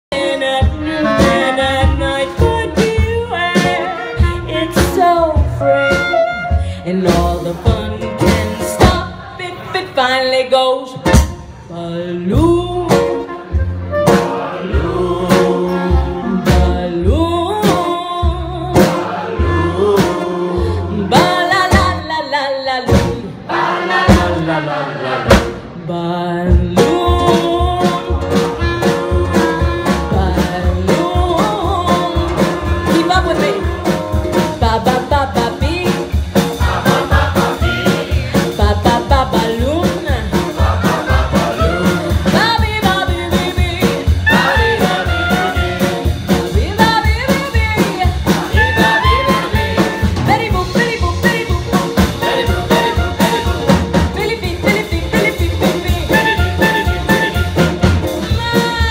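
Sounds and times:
drum kit: 0.1 - 9.6, 10.8 - 58.9
upright double bass: 0.1 - 58.9
clarinet: 0.2 - 6.8, 12.9 - 14.6, 28.1 - 30.5, 44.3 - 46.2, 48.6 - 50.4, 52.2 - 54.0, 55.1 - 58.6
ukulele: 12.2 - 23.4.

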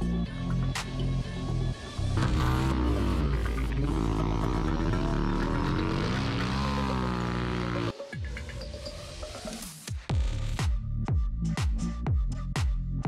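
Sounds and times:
music: 0.0 - 13.0
motorcycles riding past: 2.2 - 7.9.

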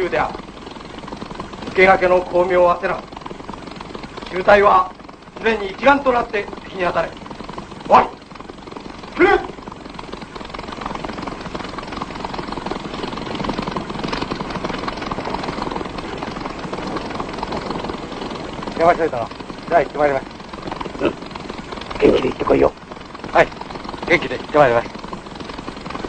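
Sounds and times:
propeller aircraft engines droning: 0.0 - 26.0.

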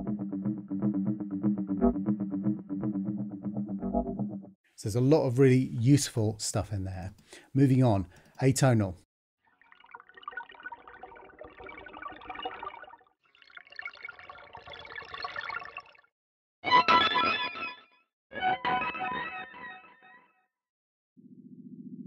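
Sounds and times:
effected electric guitar notes: 0.0 - 4.5.

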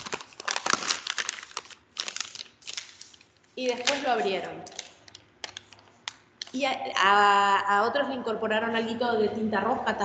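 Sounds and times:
paper crinkling and rustling: 0.0 - 6.2.

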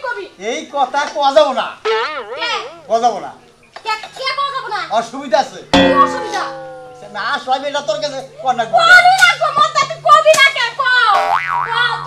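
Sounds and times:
cartoon boing: 1.8 - 2.8, 5.8 - 7.4, 11.1 - 12.0.

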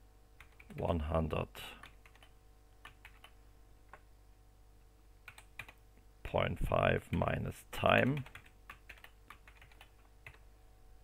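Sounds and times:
faint keyboard typing: 0.4 - 0.9, 1.7 - 4.1, 5.2 - 5.8, 7.1 - 10.5.

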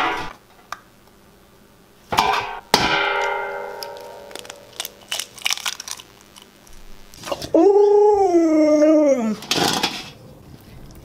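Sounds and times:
dog howling: 7.4 - 9.4.

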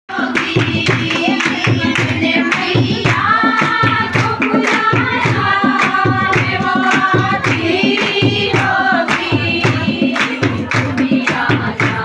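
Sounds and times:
rhythmic hand clapping: 0.1 - 12.0
women singing devotional song: 0.1 - 12.0.

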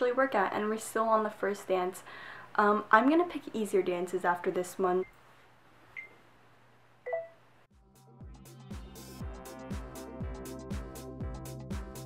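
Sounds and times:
electronic phone beeps: 7.1 - 7.4.

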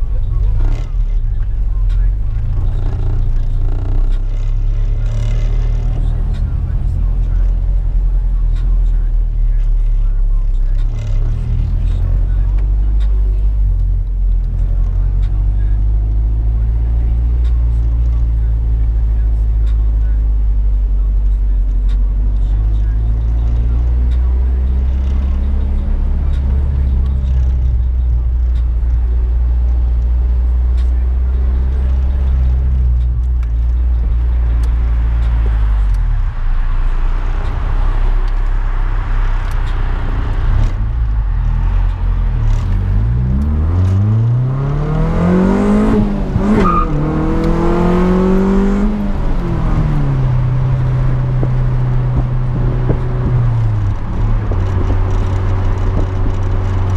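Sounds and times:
car engine low drone: 0.0 - 56.9.

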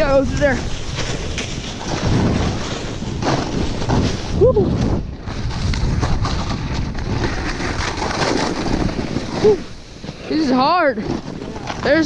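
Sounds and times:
snowboard scraping over snow: 0.0 - 12.0
wind rushing over microphone: 0.0 - 12.0.

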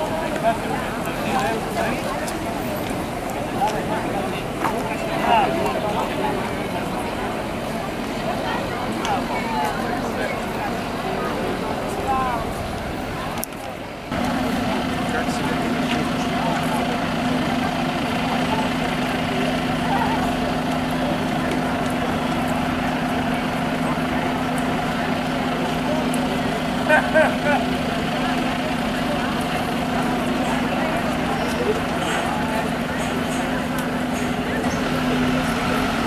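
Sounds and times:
engine hum: 0.0 - 36.0
indistinct talk of people: 0.0 - 36.0.

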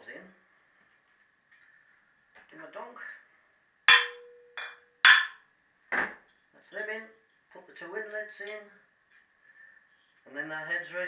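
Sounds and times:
hammer knocking on metal: 3.9 - 5.4.

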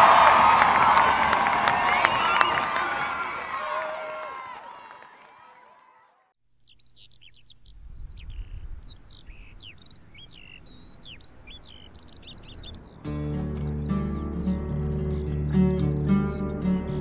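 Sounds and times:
crowd noise: 0.0 - 6.3
songbirds chirping and singing: 6.6 - 17.0.

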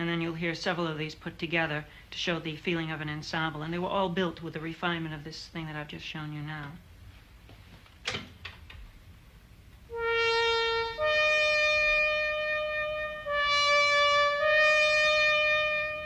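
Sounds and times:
brassy synthesizer solo: 9.9 - 16.0.

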